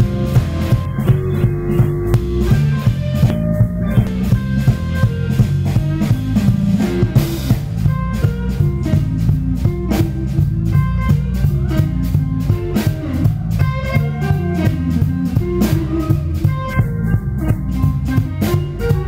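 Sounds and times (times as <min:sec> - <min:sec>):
drum kit beat: 0:00.0 - 0:19.0
electric guitar melodic lines: 0:00.0 - 0:19.0.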